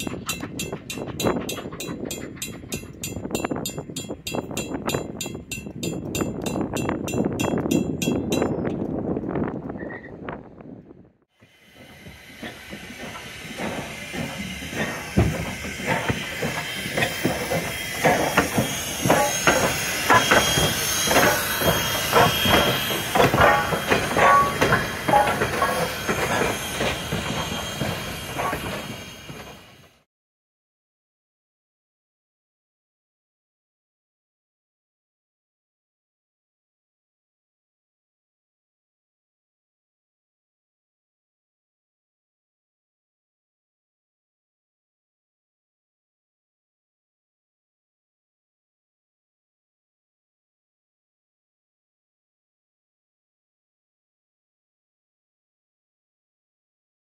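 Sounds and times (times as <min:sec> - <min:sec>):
railroad crossing bell ringing: 0:00.0 - 0:08.8, 0:11.6 - 0:29.9
steam locomotive exhaust chuffs: 0:00.0 - 0:09.4, 0:11.4 - 0:30.0
rumble of passing train coaches: 0:00.0 - 0:30.0
steam hissing: 0:11.4 - 0:30.0.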